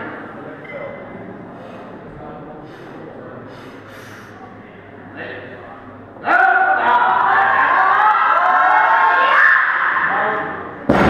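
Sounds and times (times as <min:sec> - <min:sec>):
hall background noise: 0:00.0 - 0:11.0
sharp sniffing breath: 0:02.6 - 0:04.4.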